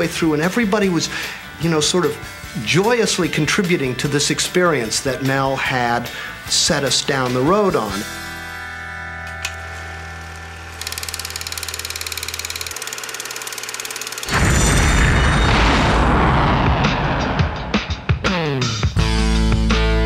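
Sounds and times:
rocket launch rumble: 0:14.3 - 0:18.1.

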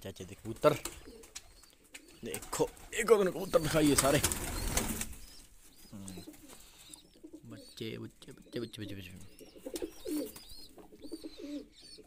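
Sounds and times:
pigeons cooing: 0:00.5 - 0:12.0.

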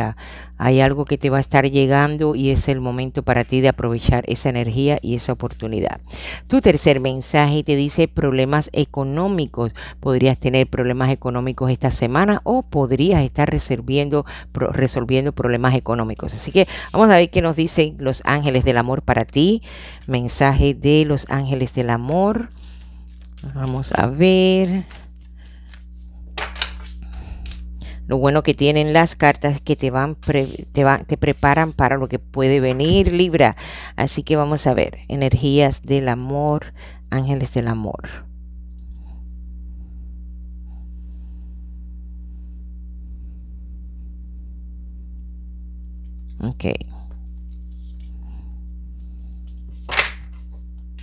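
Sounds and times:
steady low hum: 0:00.0 - 0:51.0
cards shuffled by hand: 0:21.4 - 0:27.6, 0:47.4 - 0:48.1, 0:49.3 - 0:51.0.

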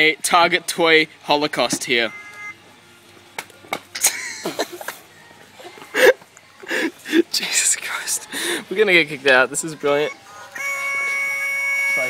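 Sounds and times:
voice-like yelps: 0:09.8 - 0:12.0.

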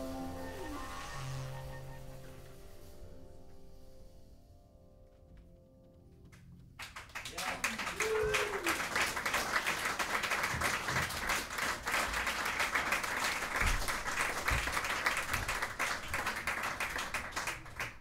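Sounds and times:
audience applauding: 0:06.3 - 0:18.0.

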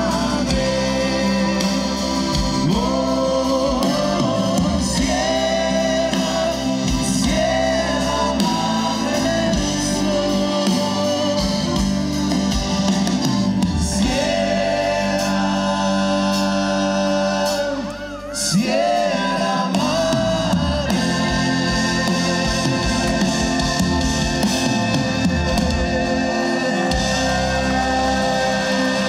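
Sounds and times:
man singing long notes: 0:00.0 - 0:12.8, 0:13.6 - 0:29.0
acoustic guitar: 0:00.0 - 0:29.0
live band playing: 0:00.0 - 0:29.0.

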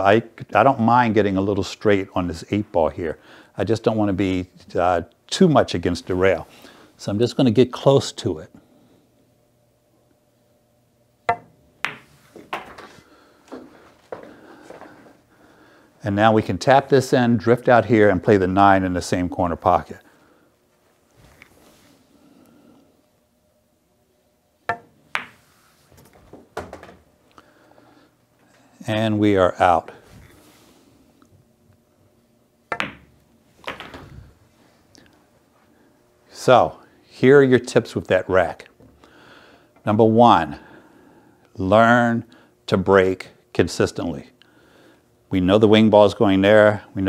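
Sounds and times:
pool cue striking ball: 0:11.3 - 0:12.9, 0:24.7 - 0:25.5, 0:32.7 - 0:34.1
billiard balls clacking: 0:11.3 - 0:13.6, 0:24.7 - 0:27.1, 0:32.7 - 0:34.2.

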